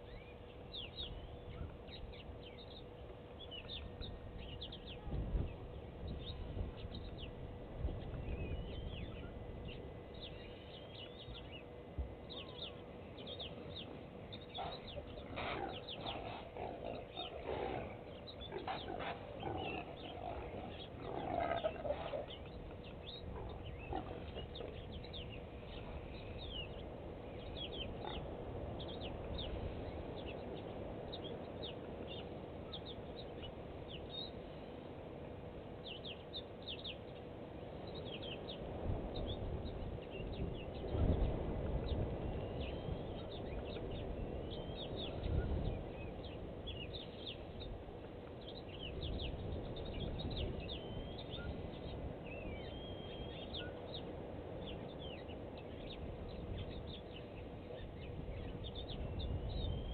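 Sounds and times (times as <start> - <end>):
faint steady hum: 0.0 - 59.9
animal sounds: 12.3 - 30.5.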